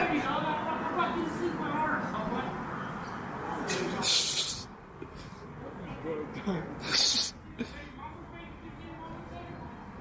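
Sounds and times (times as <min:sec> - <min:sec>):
hissy burst of breath: 0:04.0 - 0:05.4.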